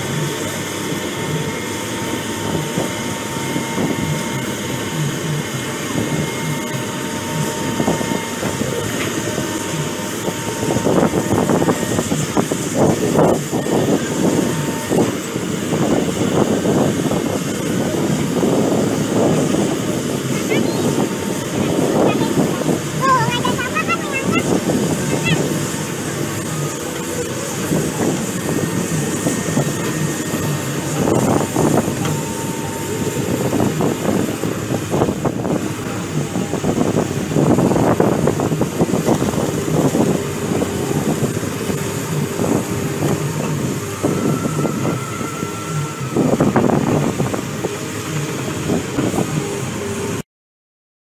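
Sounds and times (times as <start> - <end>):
diesel excavator engine under load: 0.0 - 50.2.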